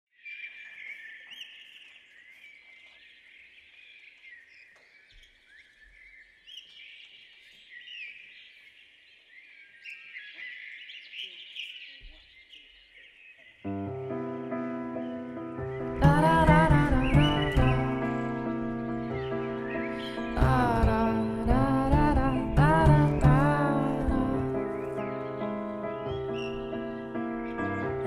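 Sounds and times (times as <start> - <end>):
birds chirping and singing: 0.2 - 28.0.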